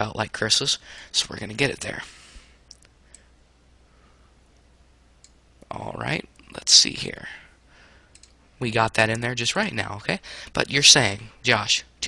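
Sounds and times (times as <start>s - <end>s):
faint computer mouse clicks: 8.1s - 8.4s.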